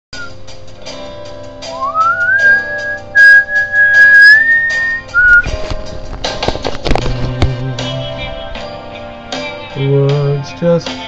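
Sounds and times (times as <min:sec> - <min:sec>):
person whistling: 0:00.2 - 0:00.4, 0:01.8 - 0:05.5
backing music with strums: 0:00.2 - 0:11.0.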